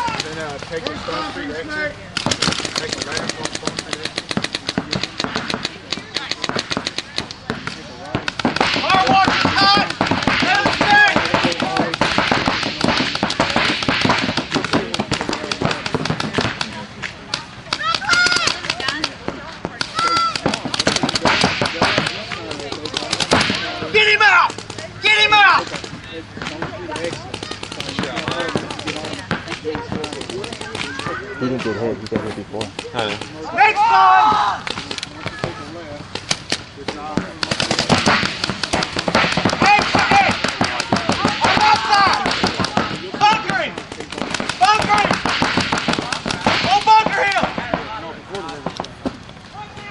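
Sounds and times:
paintball markers firing rapidly: 0.0 - 1.2, 2.2 - 31.2, 32.0 - 33.5, 34.3 - 49.2
players shouting: 0.0 - 7.6, 8.2 - 36.3, 36.9 - 48.8, 49.4 - 49.9.

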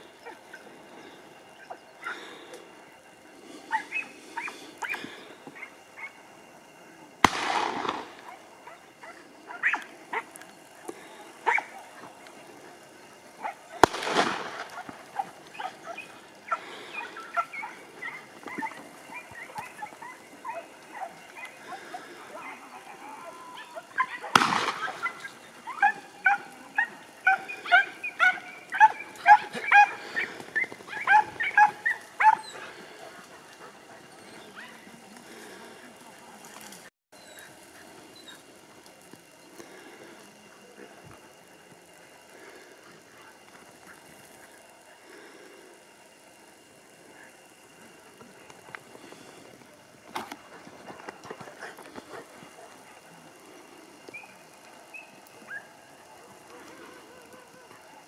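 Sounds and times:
hounds yelping: 0.0 - 2.7, 3.4 - 39.1, 50.1 - 58.0.

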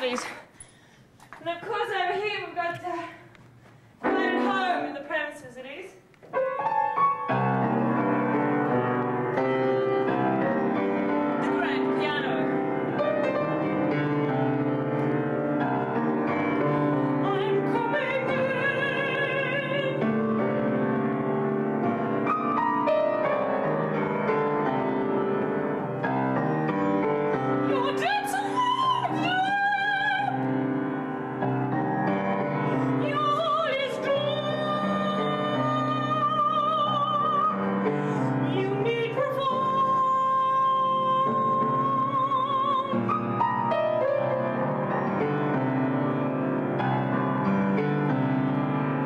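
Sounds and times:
woman singing: 1.4 - 3.3, 4.0 - 5.9, 11.4 - 12.6, 17.0 - 20.2, 27.6 - 30.6, 32.8 - 43.3
grand piano playing: 4.0 - 5.5, 6.3 - 49.0.

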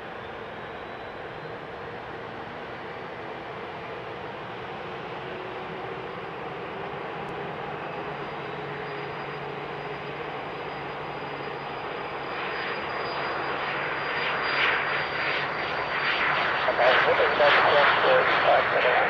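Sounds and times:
jet engines at takeoff: 0.0 - 19.0.

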